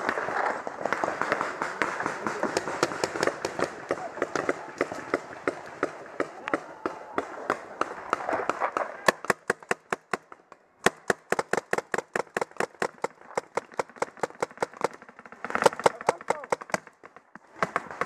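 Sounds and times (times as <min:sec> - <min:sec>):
paintball markers firing: 0:00.0 - 0:18.0.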